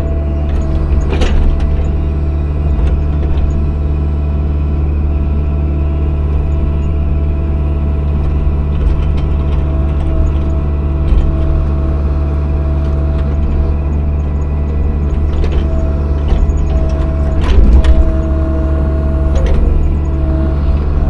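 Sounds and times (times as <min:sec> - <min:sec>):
excavator diesel engine running: 0:00.0 - 0:21.0
faint clicks and scrapes: 0:12.6 - 0:18.4.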